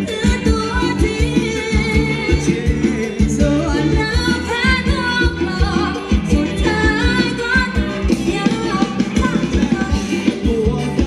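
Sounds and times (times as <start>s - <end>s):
person singing: 0.0s - 11.0s.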